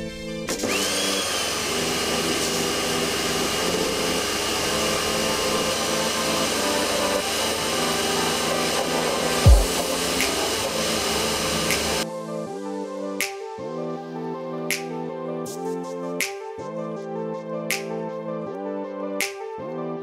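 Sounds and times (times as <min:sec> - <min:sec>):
pressure washer spraying: 0:00.9 - 0:12.0.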